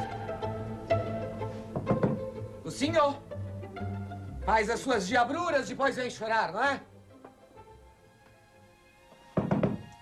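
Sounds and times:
soft background music: 0.0 - 10.0
knocks on wooden door: 1.8 - 2.2, 9.4 - 9.9.

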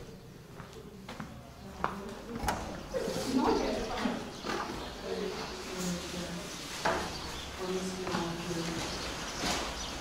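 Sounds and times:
indistinct voices talking: 0.0 - 9.4.

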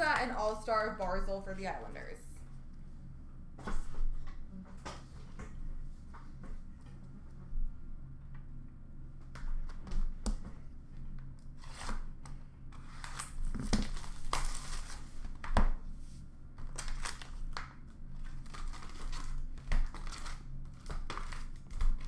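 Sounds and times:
plastic wrappers tearing and crinkling: 12.9 - 15.3, 16.6 - 22.0.

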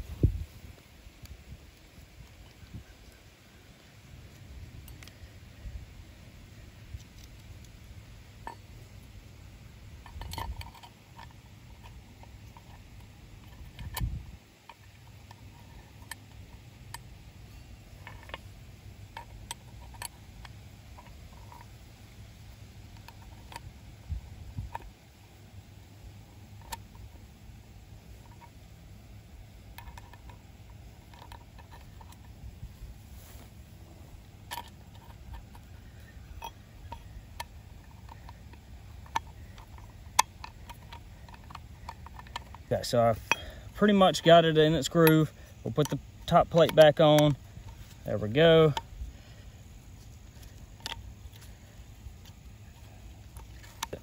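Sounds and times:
low steady rumble: 0.0 - 54.0
small metal clicks and taps: 4.2 - 5.3, 6.8 - 9.2, 9.9 - 21.8, 22.5 - 25.0, 26.5 - 27.3, 28.2 - 28.7, 29.6 - 32.5, 34.3 - 54.0.

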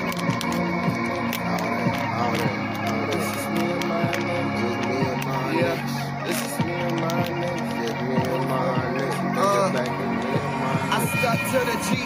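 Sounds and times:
low bass notes: 0.0 - 12.0
sharp percussion ticks: 0.0 - 12.0.

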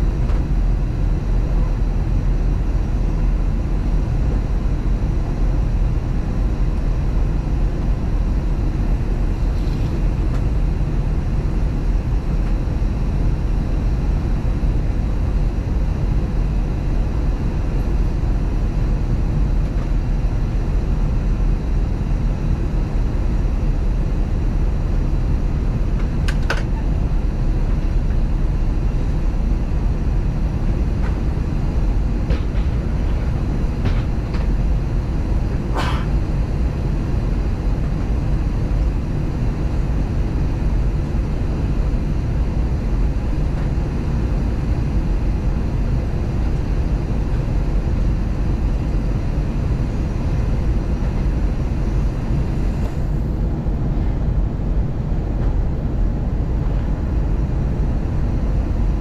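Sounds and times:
airplane cabin airflow and engine drone: 0.0 - 59.0.

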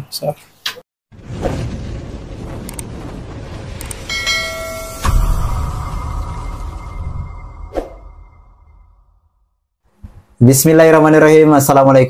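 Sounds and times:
low rumbling sound effect: 1.1 - 9.5
bright bell chime: 4.1 - 8.3.

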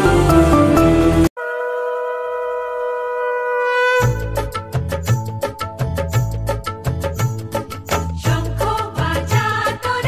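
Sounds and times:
background music: 0.0 - 1.3, 3.9 - 10.0
conch shell blown: 0.0 - 5.8.

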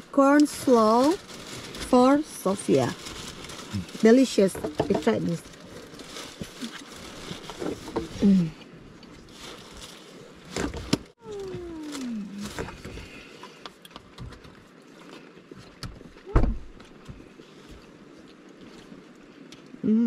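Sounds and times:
rain pattering on a car: 0.0 - 8.5.

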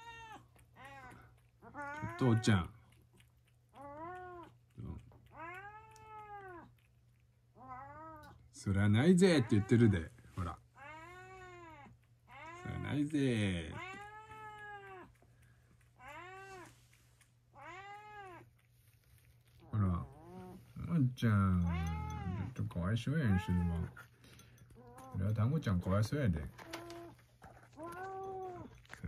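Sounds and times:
cat meowing: 0.0 - 2.5, 3.8 - 4.5, 5.2 - 6.7, 7.6 - 8.4, 9.3 - 10.0, 10.8 - 13.0, 13.6 - 15.2, 16.0 - 16.8, 17.6 - 18.5, 21.6 - 22.6, 23.3 - 24.0, 26.6 - 28.8.

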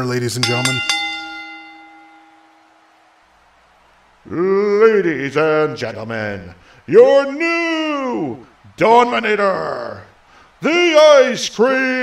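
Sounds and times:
bell ringing: 0.0 - 3.0.

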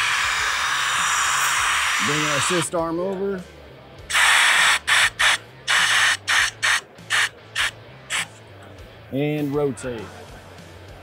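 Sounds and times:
pneumatic air valve hisses: 0.0 - 2.7, 4.1 - 8.4.

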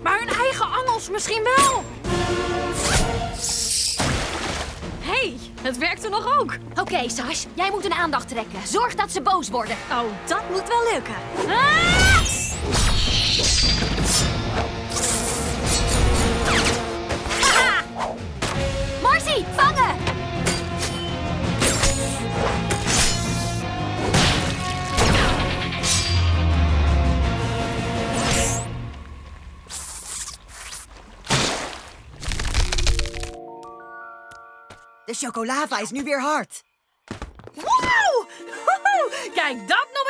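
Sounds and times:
action music: 1.8 - 3.9, 4.6 - 29.8.

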